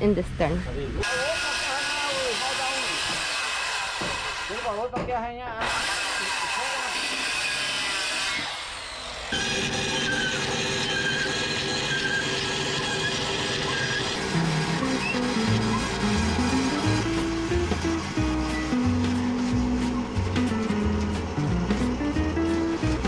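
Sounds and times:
electric hand planer on wood: 1.0s - 4.7s, 5.6s - 23.0s
woodworking machinery running: 1.0s - 4.9s, 5.6s - 23.0s
bass line: 14.3s - 23.0s
background music: 14.4s - 23.0s.

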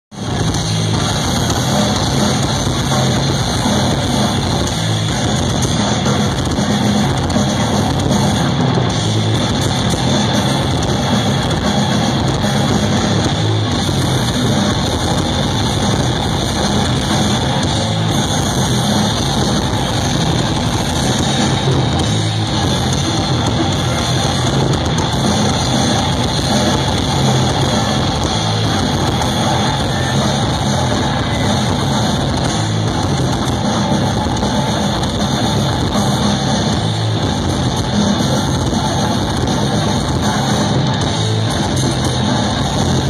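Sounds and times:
distorted electric guitars: 0.0s - 43.0s
drum kit: 0.0s - 43.0s.

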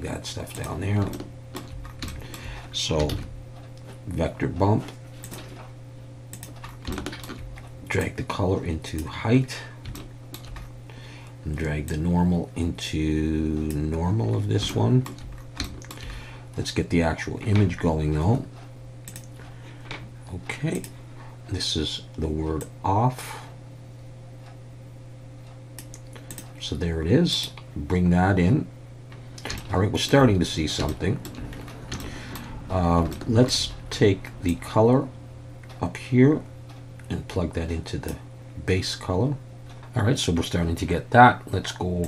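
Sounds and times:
steady low hum: 0.0s - 42.0s
keyboard and mouse clicks: 6.3s - 8.1s, 9.8s - 10.7s, 19.1s - 19.3s
computer mouse clicks: 19.1s - 19.4s, 25.8s - 26.6s.

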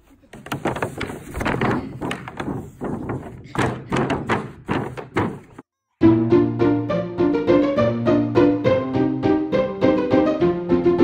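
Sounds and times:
plastic pool thunks and knocks: 0.3s - 5.6s.

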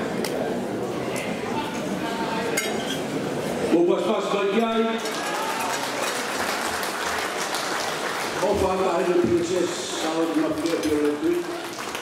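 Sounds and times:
cutlery and glasses clinking: 2.6s - 3.1s.

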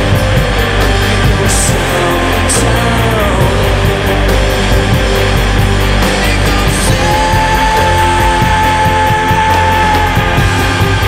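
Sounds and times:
drums: 0.0s - 11.0s
rock band playing live: 0.0s - 11.0s.

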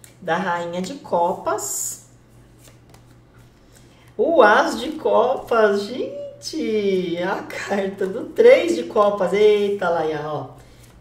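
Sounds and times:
low steady hum: 0.0s - 11.0s
cards rustling and sliding: 2.3s - 5.6s, 10.6s - 11.0s.

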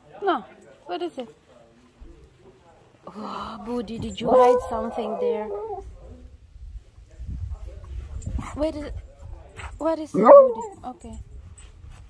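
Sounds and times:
dog vocalizing faintly: 3.4s - 6.2s.

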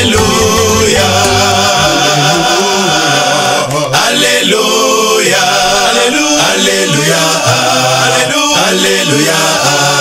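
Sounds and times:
low musical accompaniment: 0.0s - 3.6s
man singing a chant: 0.0s - 10.0s.

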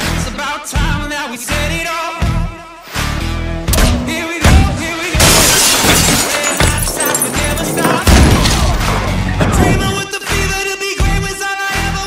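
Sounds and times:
background music: 0.0s - 12.0s
glass shattering: 5.0s - 10.0s.

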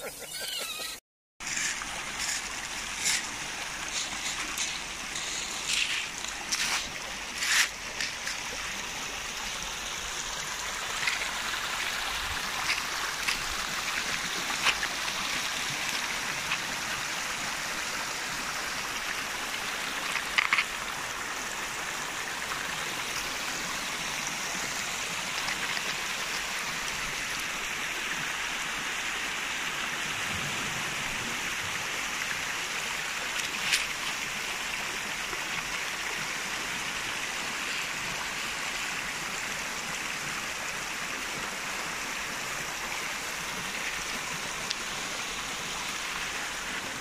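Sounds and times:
pebble clicks and splashes: 1.4s - 9.4s, 10.4s - 17.0s, 18.8s - 21.5s, 22.4s - 27.4s, 33.2s - 34.3s
water running over pebbles: 1.4s - 47.0s.

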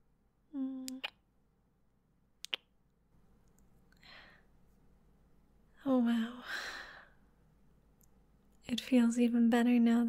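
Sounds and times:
lip smack kisses: 0.8s - 1.2s, 2.4s - 2.7s.

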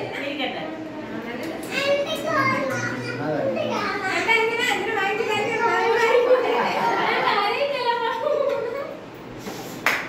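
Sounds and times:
child talking and laughing: 1.7s - 9.2s
women talking and laughing: 4.1s - 9.2s.

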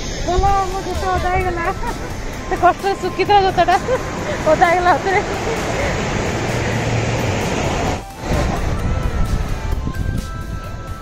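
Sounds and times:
surf breaking on beach: 0.0s - 9.8s.

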